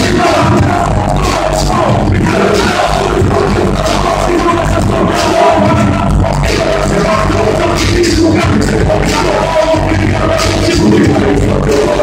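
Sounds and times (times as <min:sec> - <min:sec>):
crowd noise: 0:00.0 - 0:12.0
hip hop drum beat with bass: 0:00.0 - 0:12.0
person rapping: 0:00.0 - 0:12.0.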